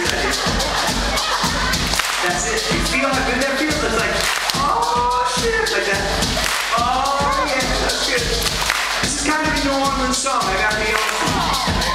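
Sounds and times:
crowd noise: 0.0s - 11.9s
live band drums and bass: 0.0s - 11.9s.

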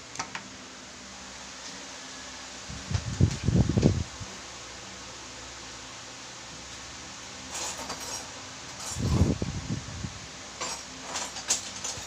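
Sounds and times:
fan-like hum and hiss: 0.0s - 12.0s.

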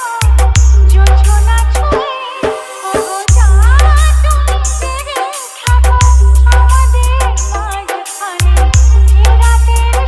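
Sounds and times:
remix dance music: 0.0s - 10.0s
heavy sub-bass note: 0.2s - 2.0s, 3.3s - 4.9s, 5.8s - 7.6s, 8.5s - 10.0s.

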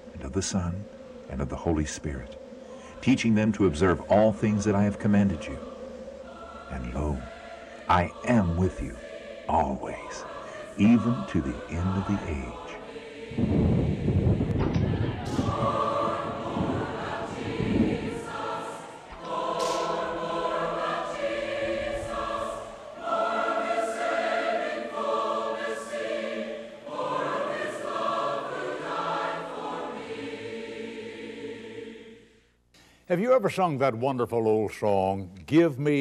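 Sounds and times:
choir singing: 0.0s - 32.4s
low thudding: 13.3s - 20.5s.

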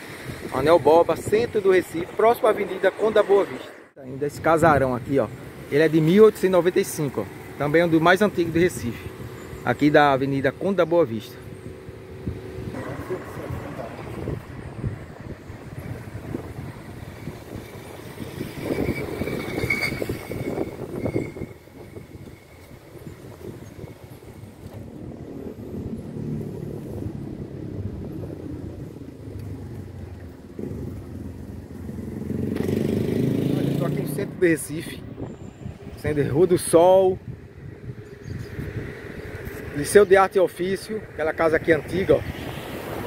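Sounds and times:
motor vehicles passing: 0.0s - 43.0s.

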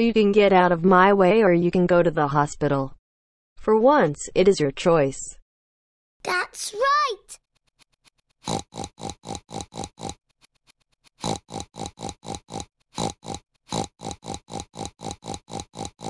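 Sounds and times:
cartoon pig oinking: 11.2s - 16.0s.

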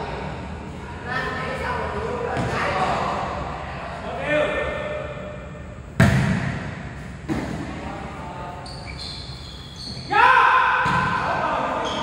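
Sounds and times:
volleyball struck hard: 6.0s - 7.5s.

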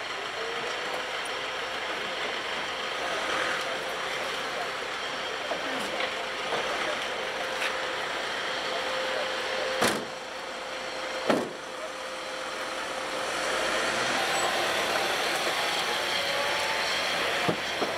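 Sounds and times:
van engine running: 0.0s - 17.9s
van moving off: 0.0s - 17.9s
heavy door slams: 9.8s - 10.2s.

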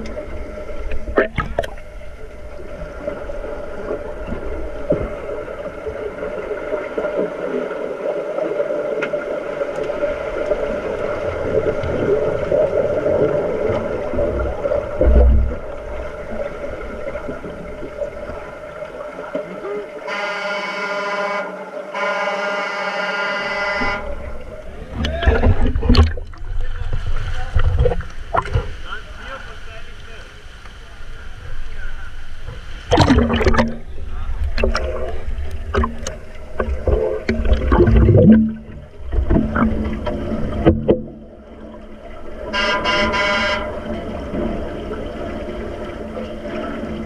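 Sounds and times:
underwater bubbles and churning: 0.0s - 47.0s
water splashing: 0.0s - 47.0s
underwater signal horn: 20.0s - 24.4s, 42.4s - 44.4s.

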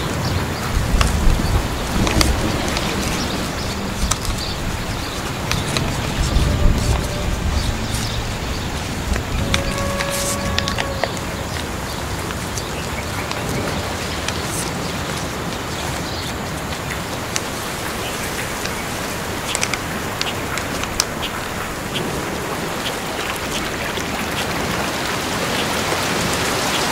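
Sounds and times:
rain hissing: 0.0s - 26.9s
small ticks: 0.1s - 11.7s, 19.4s - 21.4s
short held tone: 3.8s - 11.5s.

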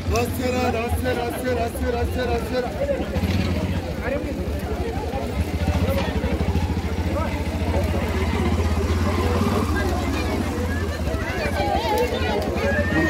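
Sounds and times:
chatter of voices: 0.0s - 13.0s
small engine idling: 0.0s - 13.0s.

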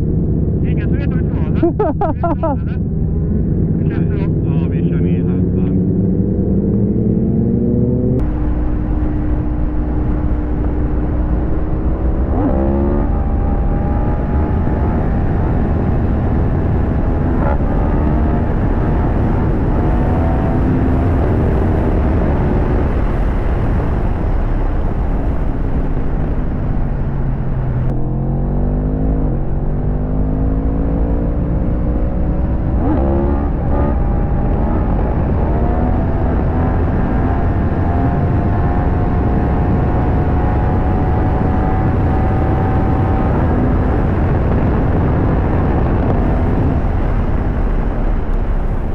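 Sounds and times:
motorcycle engine accelerating: 0.0s - 48.9s
wind rush on microphone: 5.8s - 28.1s, 29.2s - 48.9s.

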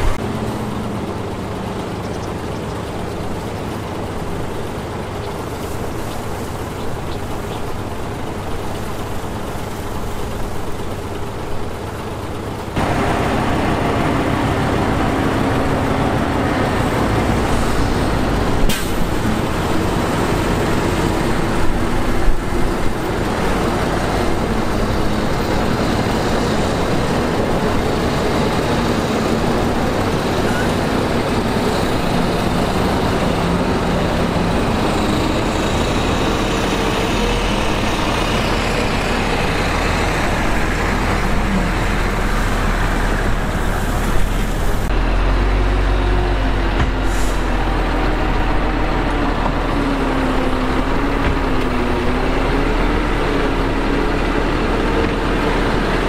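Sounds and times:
bulldozer diesel engines: 0.0s - 56.0s
bulldozer pushing dirt: 0.0s - 56.0s.

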